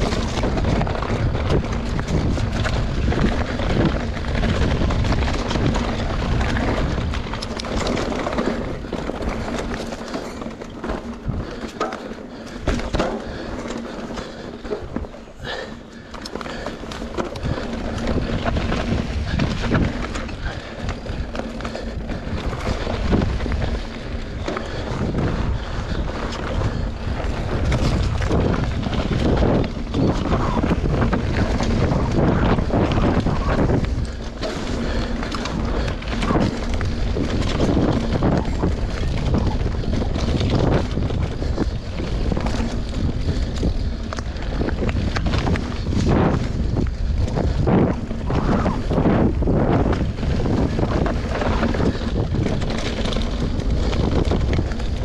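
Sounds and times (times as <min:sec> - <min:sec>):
bike clicks and rattles: 0:00.0 - 0:55.0
knobby tyres rumbling on trail: 0:00.0 - 0:55.0
wind buffeting microphone: 0:00.0 - 0:55.0.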